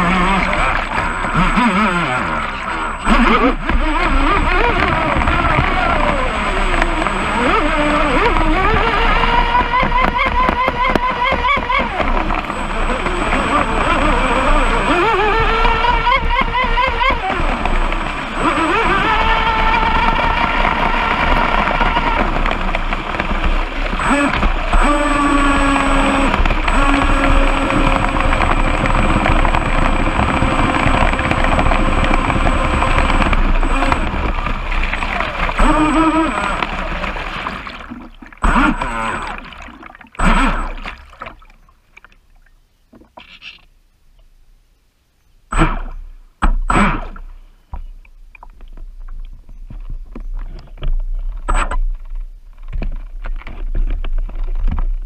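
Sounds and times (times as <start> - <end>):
electric motor whining: 0.0 - 41.2
water rushing against hull: 0.0 - 43.7.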